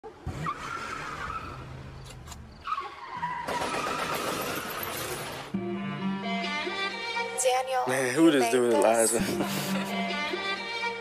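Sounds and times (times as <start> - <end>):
tires screeching: 0.0 - 5.5.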